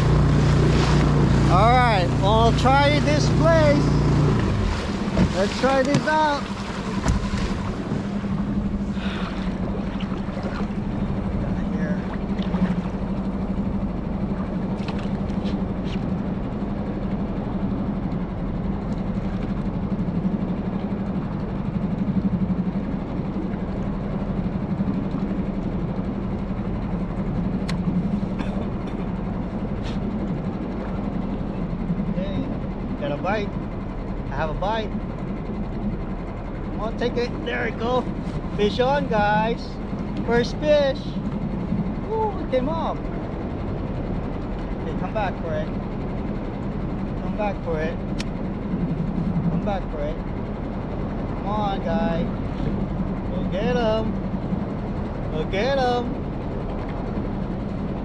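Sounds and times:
outboard motor humming: 0.0s - 58.0s
water noise: 0.0s - 58.0s
wind: 0.0s - 58.0s.

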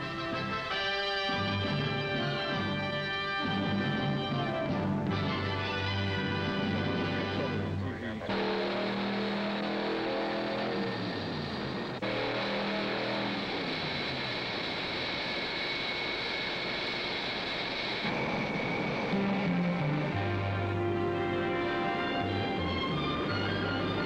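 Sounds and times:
background music: 0.0s - 13.2s, 18.1s - 24.0s
jet engine whining: 0.0s - 24.0s.

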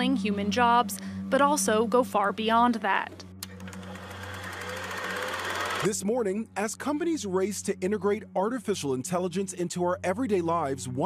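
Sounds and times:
low steady hum: 0.0s - 4.9s
fast buzzing rattle: 3.5s - 5.9s.

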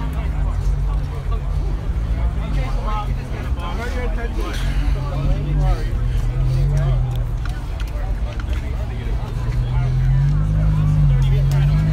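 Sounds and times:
people chattering: 0.0s - 11.9s.

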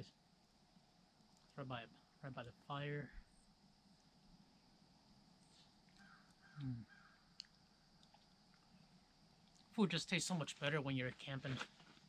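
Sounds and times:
faint ambient hiss: 0.0s - 12.0s
distant bird calling: 3.0s - 9.4s.

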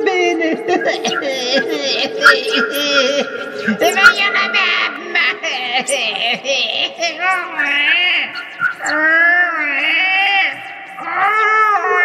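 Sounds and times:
electronically altered voices warbling: 0.0s - 12.0s.

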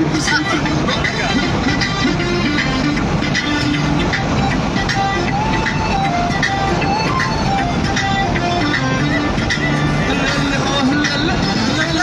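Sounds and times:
music over car stereo: 0.0s - 12.0s
road and engine noise: 0.0s - 12.0s.

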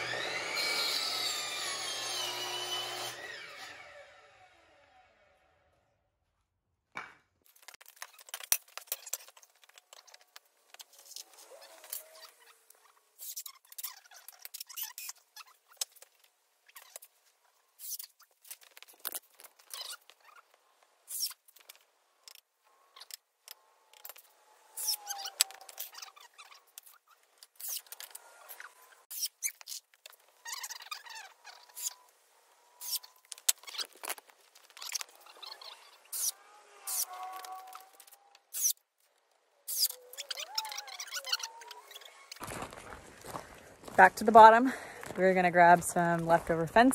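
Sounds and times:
cordless drill whining: 0.0s - 5.1s.

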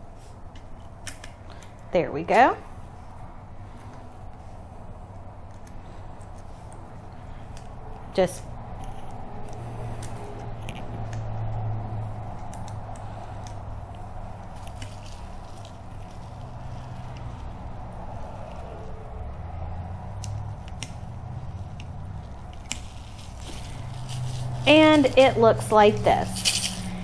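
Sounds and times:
steady low hum: 0.0s - 27.0s
light clicks and rubbing: 21.6s - 27.0s.

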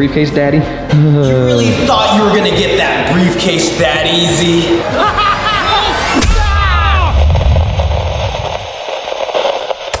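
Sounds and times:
crackling static glitch: 1.7s - 10.0s
low rumble: 4.5s - 8.8s.

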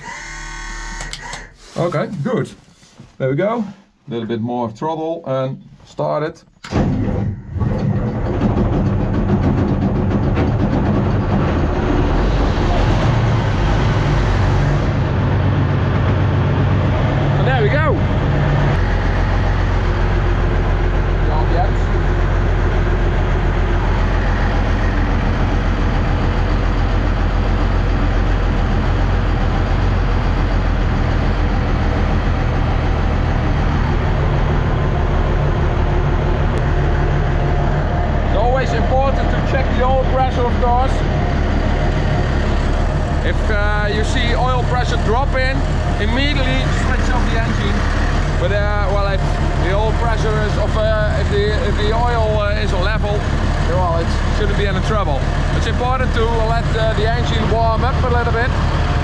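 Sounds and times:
diesel engine starting and idling: 0.0s - 2.1s, 6.6s - 59.0s.

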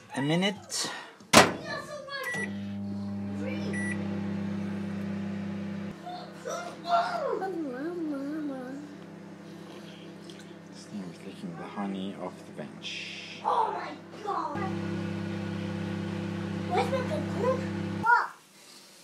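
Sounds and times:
microwave humming: 2.2s - 18.0s
microwave beeps: 2.3s - 5.9s.

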